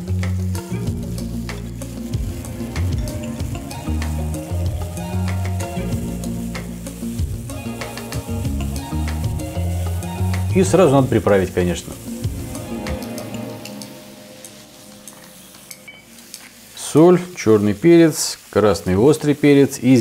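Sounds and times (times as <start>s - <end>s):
background music with bass line: 0.0s - 15.1s
vegetables sizzling in oil: 0.0s - 20.0s.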